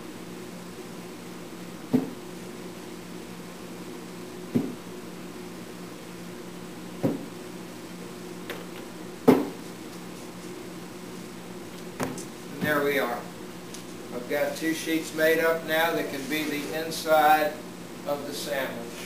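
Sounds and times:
steady hum: 0:00.0 - 0:19.0
iron knocking on wooden table: 0:07.0 - 0:07.3, 0:09.3 - 0:09.6.

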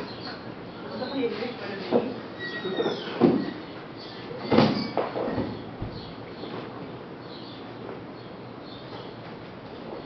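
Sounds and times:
loud thumps on mats: 0:04.5 - 0:06.1.

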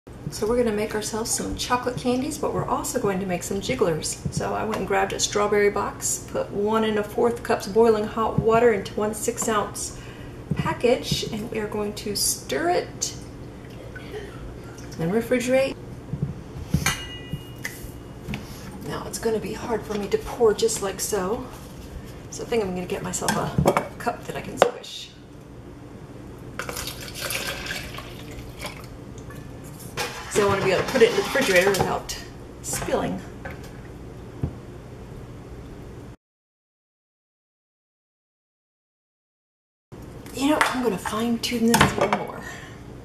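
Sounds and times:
bowl ringing with thin tone: 0:16.9 - 0:18.2.

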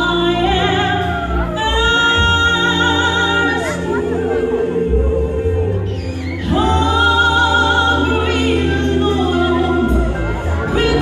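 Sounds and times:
band with steady bass: 0:00.0 - 0:11.0
gospel singers holding a chord: 0:00.0 - 0:11.0.

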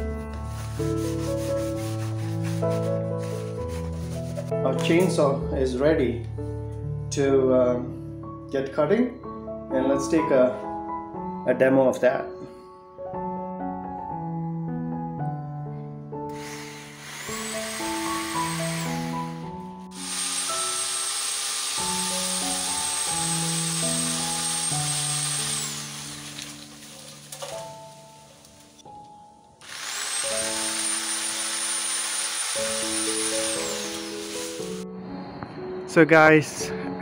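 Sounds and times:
piano music: 0:00.0 - 0:37.0
electric pole saw whining: 0:16.3 - 0:28.9, 0:29.6 - 0:34.8.

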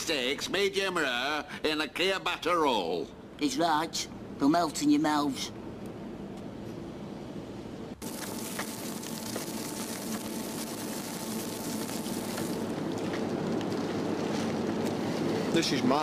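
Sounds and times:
meat sizzling and crackling: 0:08.0 - 0:13.9.

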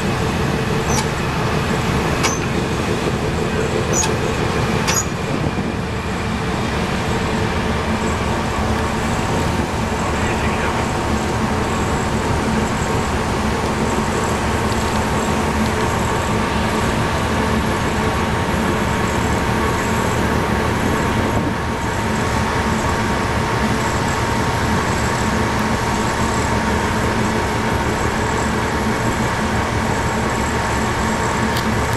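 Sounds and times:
constant hum: 0:00.0 - 0:31.9
ship engines droning: 0:00.0 - 0:31.9.

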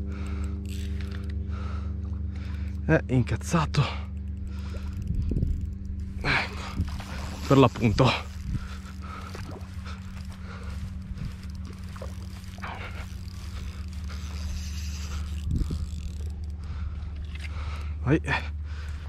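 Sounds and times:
fishing reel whirring and scraping: 0:00.0 - 0:19.0
low hum: 0:00.0 - 0:19.0.

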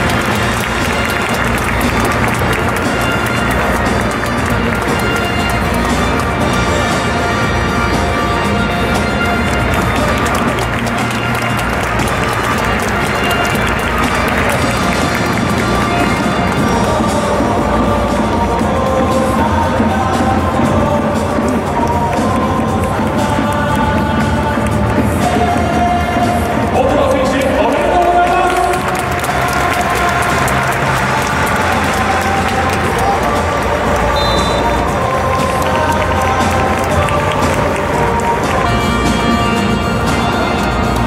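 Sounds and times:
crowd clapping: 0:00.0 - 0:41.0
music over public-address system: 0:00.0 - 0:41.0.

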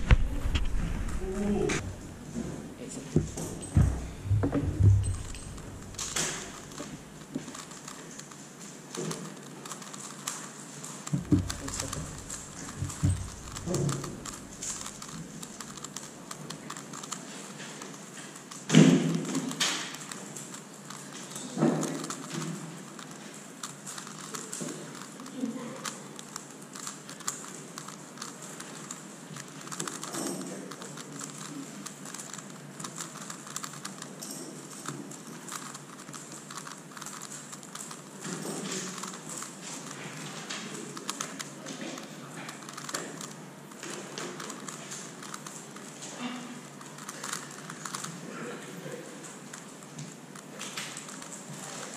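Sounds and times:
plastic puzzle clicking: 0:03.2 - 0:48.2, 0:49.1 - 0:51.9.

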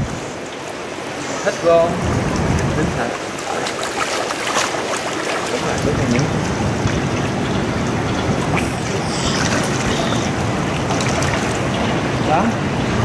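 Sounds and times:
pool water splashing: 0:00.0 - 0:13.0.

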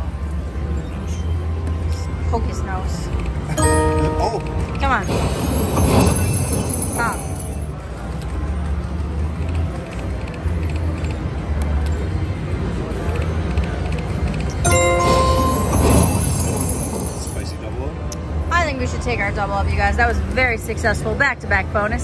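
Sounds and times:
casino din: 0:03.6 - 0:05.8, 0:14.7 - 0:17.4
bright multi-tone chime: 0:03.6 - 0:07.2, 0:14.7 - 0:17.5
slot machine game sounds: 0:03.6 - 0:07.5, 0:14.7 - 0:17.5.

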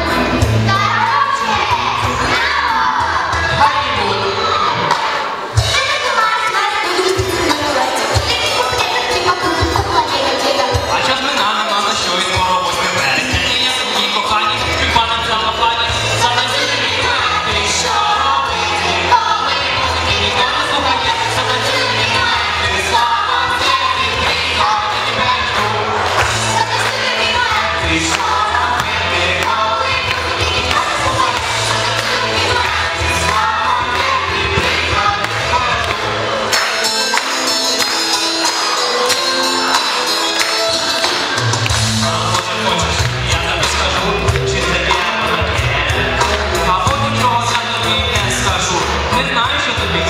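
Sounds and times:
backing track with steady beat: 0:00.0 - 0:50.0
children's choir singing: 0:00.0 - 0:50.0.

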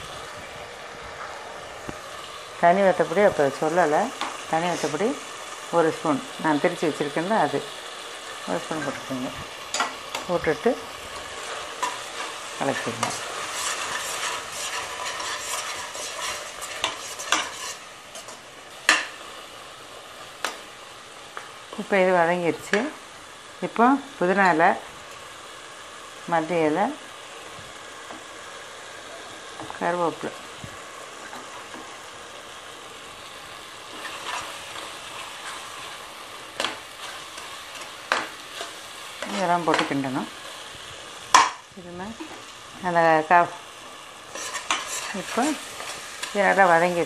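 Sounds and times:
masala sizzling in pot: 0:00.0 - 0:47.0
spatula stirring and scraping: 0:09.7 - 0:19.0, 0:33.8 - 0:40.6, 0:44.2 - 0:46.9
steel spoon scraping pot: 0:11.4 - 0:18.4, 0:44.3 - 0:46.3.

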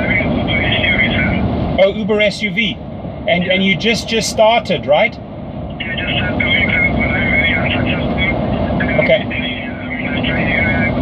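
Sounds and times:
vehicle cabin rumble: 0:00.0 - 0:11.0.

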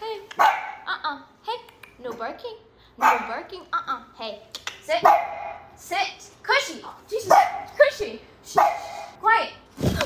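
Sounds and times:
dog barking: 0:00.4 - 0:00.9, 0:03.0 - 0:03.4, 0:05.0 - 0:05.7, 0:07.2 - 0:07.8, 0:08.5 - 0:09.2.

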